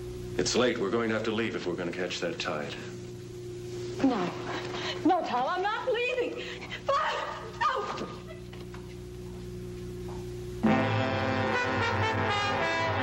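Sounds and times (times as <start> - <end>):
low steady hum: 0.0 - 13.0
woman crying out: 6.8 - 8.4
dramatic brass film score: 10.6 - 13.0.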